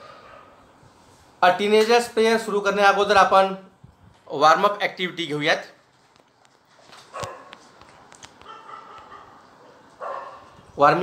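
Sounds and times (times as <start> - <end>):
dog barking: 0.0 - 0.6, 7.1 - 7.6, 8.4 - 10.6.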